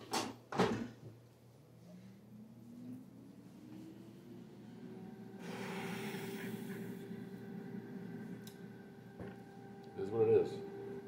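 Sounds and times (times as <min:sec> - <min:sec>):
fan hum rising in pitch: 0:01.5 - 0:11.0.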